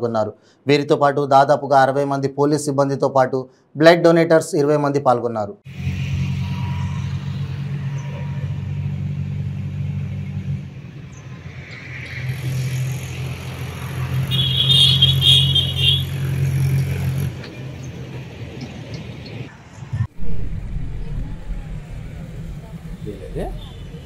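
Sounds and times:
engine humming: 5.7 - 24.0.

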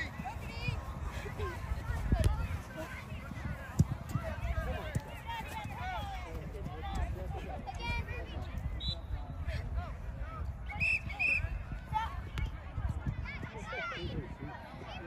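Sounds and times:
players and spectators calling out: 0.0 - 15.0.

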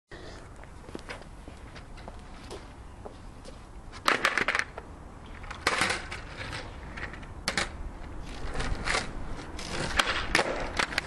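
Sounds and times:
skateboard clattering on tarmac: 4.0 - 11.0.

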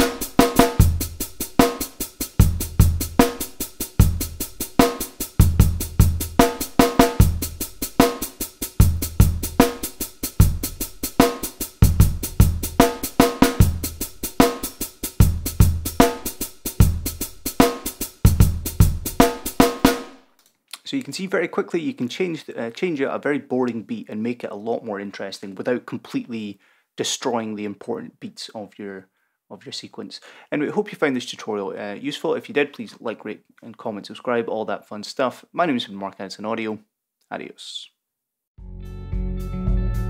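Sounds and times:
drum kit beat with shuffled hi-hats: 0.0 - 20.2.

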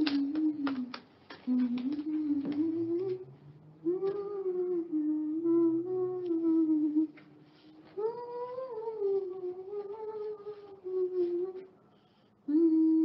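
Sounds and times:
woman humming a slow tune: 1.5 - 7.2, 12.5 - 13.0.

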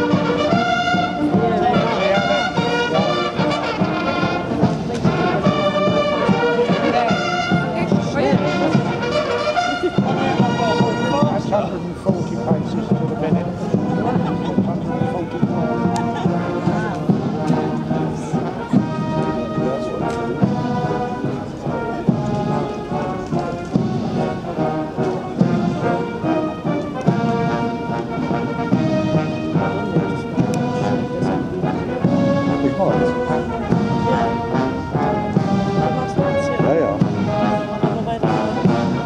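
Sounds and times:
marching band playing a march: 0.0 - 39.0.

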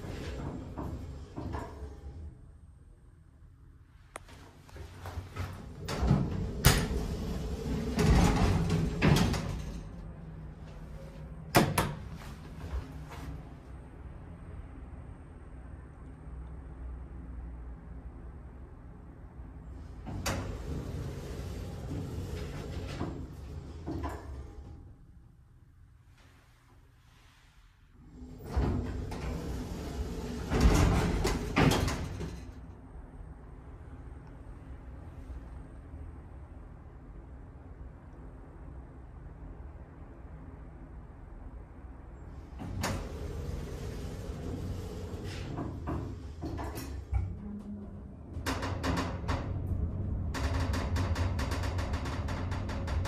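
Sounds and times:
elevator doors sliding: 0.0 - 2.6, 4.3 - 13.7, 19.7 - 25.2, 28.0 - 35.6, 42.2 - 53.0
low steady hum: 0.0 - 53.0.

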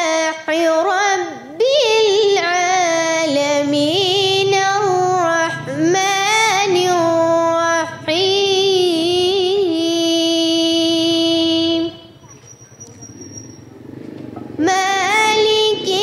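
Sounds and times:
girl chanting melodically: 0.0 - 12.2, 14.6 - 16.0.

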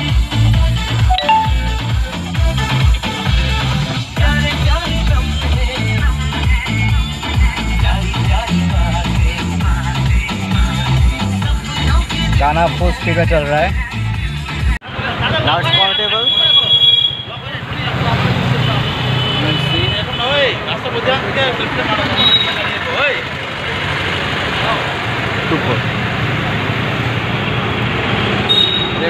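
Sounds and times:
high beep: 1.1 - 1.8.

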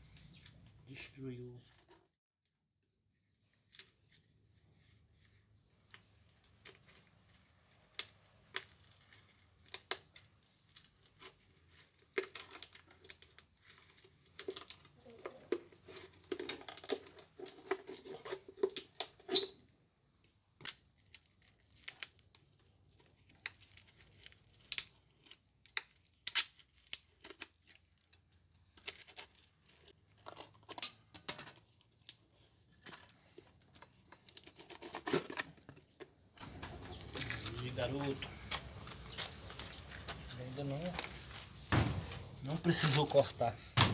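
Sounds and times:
plastic cracking: 5.8 - 19.2, 31.8 - 40.3.

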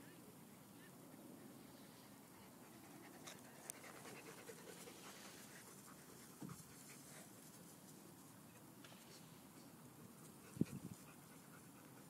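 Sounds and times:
dog panting: 2.2 - 7.3.

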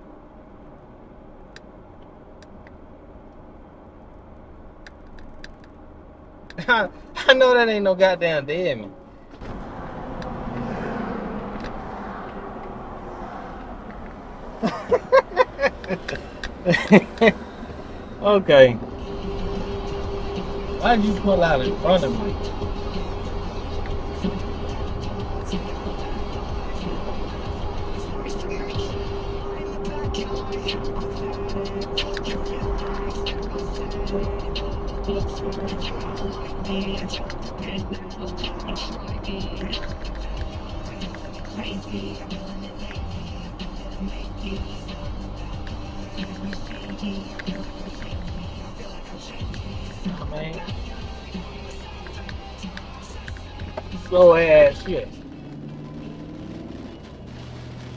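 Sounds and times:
car road noise: 0.0 - 57.9
music with bass beat: 18.8 - 57.9.

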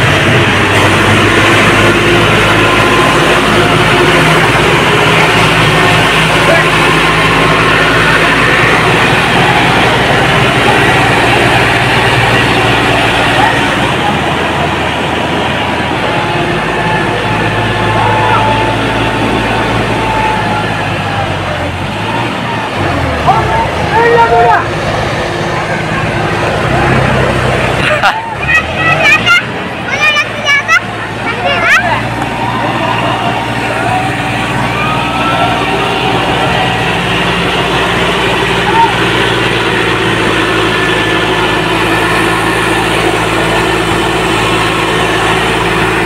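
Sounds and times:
people shouting: 0.0 - 46.0
tractor diesel engine running: 0.0 - 46.0.

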